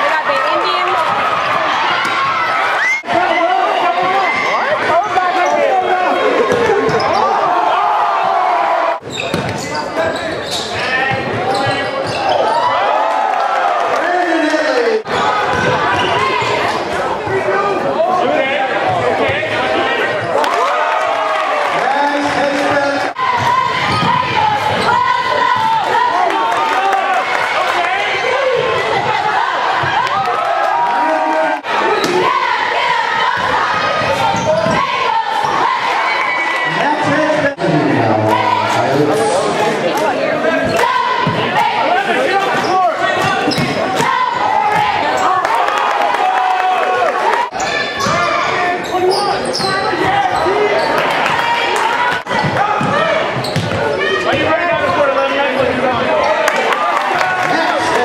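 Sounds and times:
crowd shouting and cheering: 0:00.0 - 0:58.0
sneakers squeaking on court: 0:06.5 - 0:07.4, 0:09.0 - 0:12.7, 0:33.2 - 0:35.6, 0:42.4 - 0:44.1, 0:47.5 - 0:51.4, 0:52.3 - 0:54.3
basketball bouncing: 0:09.1 - 0:09.7, 0:15.4 - 0:16.5, 0:23.3 - 0:25.9, 0:33.1 - 0:34.9, 0:52.2 - 0:55.0
basketball bouncing on hardwood: 0:52.4 - 0:53.8.

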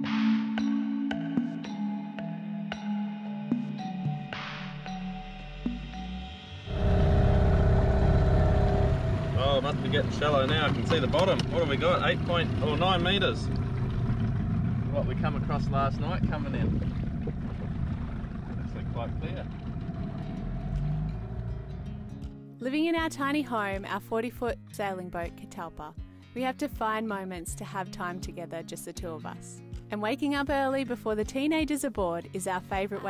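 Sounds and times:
soft music: 0:00.0 - 0:11.9, 0:20.4 - 0:33.0
rushing wind: 0:06.7 - 0:10.9, 0:16.1 - 0:22.1
outboard motor running: 0:06.7 - 0:22.2.

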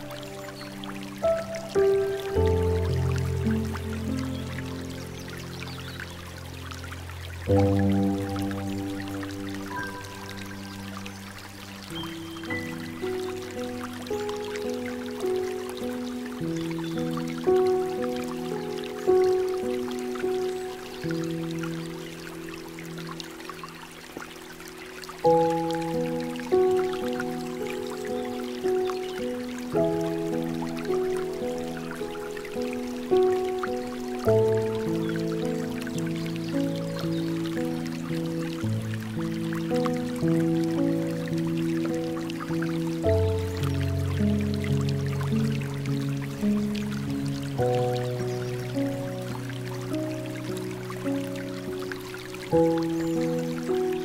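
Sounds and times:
slow soft piano music: 0:00.0 - 0:54.0
trickle of running water: 0:00.0 - 0:54.0.

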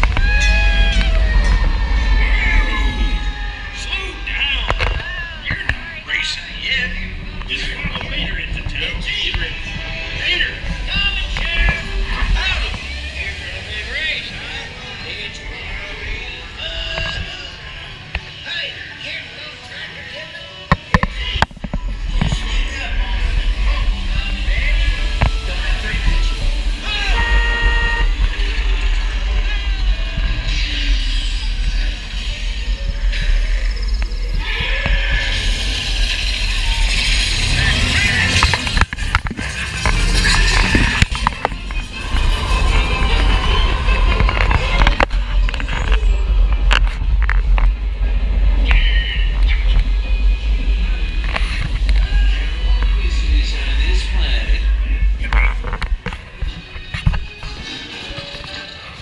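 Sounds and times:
ride vehicle rumbling on track: 0:00.0 - 0:59.0
ride music: 0:20.6 - 0:59.0.

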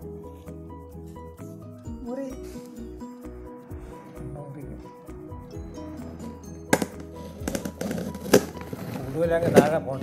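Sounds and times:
light background music: 0:00.0 - 0:10.0.

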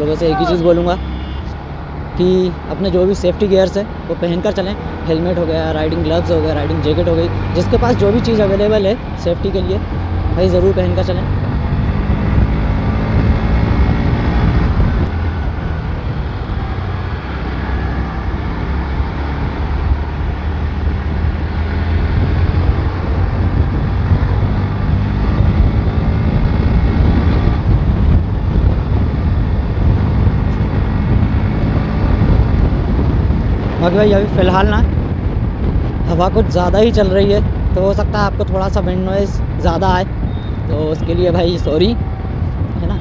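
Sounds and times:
wind buffeting microphone: 0:01.4 - 0:43.0.

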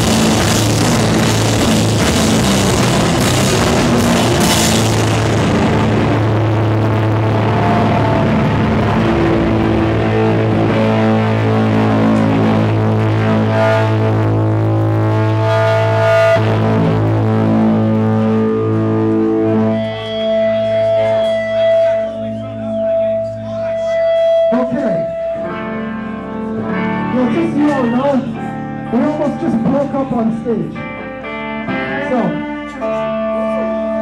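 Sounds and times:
high feedback tone: 0:00.0 - 0:30.4
distorted electric guitars droning: 0:00.0 - 0:34.0.

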